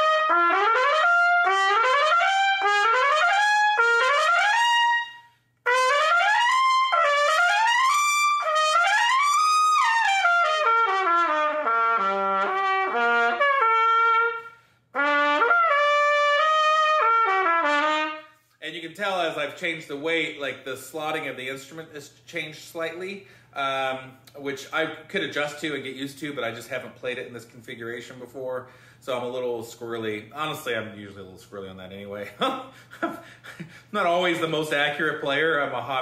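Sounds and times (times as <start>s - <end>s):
solo trumpet playing: 0.0s - 18.4s.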